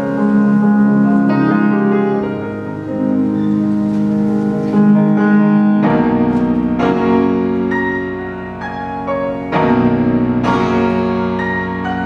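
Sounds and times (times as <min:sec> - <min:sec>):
piano playing slow chords: 0:00.0 - 0:12.0.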